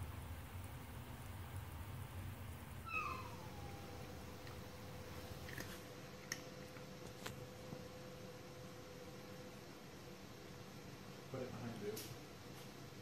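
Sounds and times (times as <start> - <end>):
cat meowing: 2.8 - 4.3.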